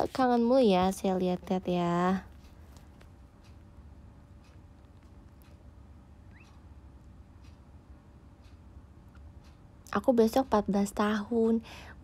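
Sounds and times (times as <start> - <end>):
clock ticking: 0.0 - 11.6
low steady hum: 0.0 - 12.0.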